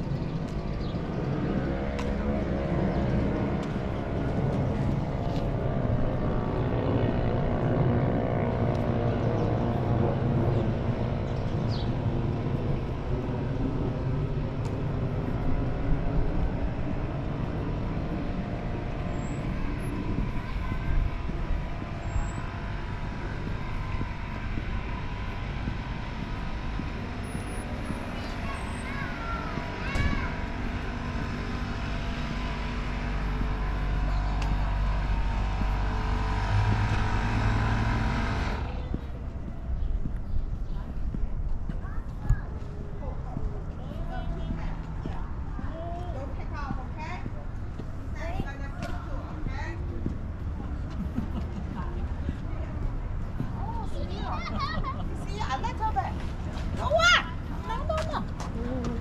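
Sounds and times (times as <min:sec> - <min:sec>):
droning engine hum: 0:00.0 - 0:59.0
traffic rumble: 0:00.0 - 0:59.0.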